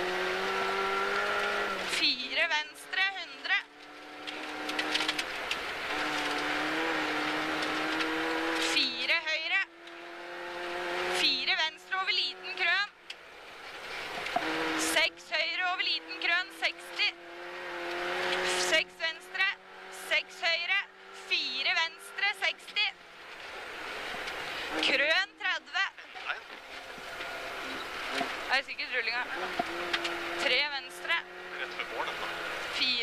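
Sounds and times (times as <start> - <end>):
rally car engine accelerating: 0.0 - 33.0
road noise on snow: 0.0 - 33.0.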